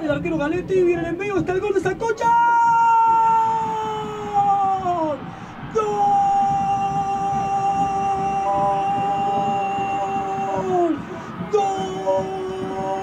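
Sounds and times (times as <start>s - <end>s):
commentator shouting goal cry: 1.8s - 13.0s
crowd noise: 3.1s - 13.0s.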